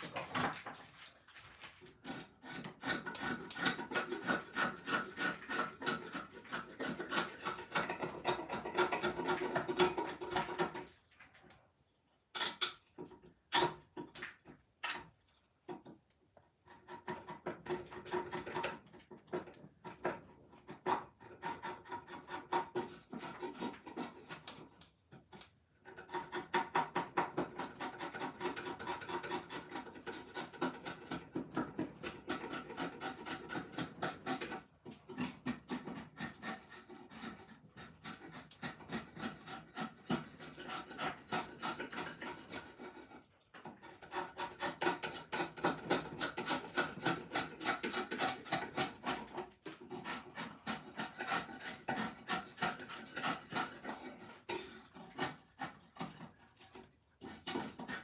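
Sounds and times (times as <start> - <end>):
rasp filing wood: 1.6 - 10.8, 16.6 - 24.9, 25.8 - 58.0.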